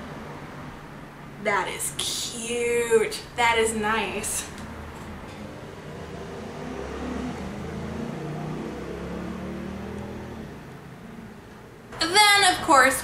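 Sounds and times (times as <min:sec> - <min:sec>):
low vehicle engine hum: 0:00.0 - 0:12.2.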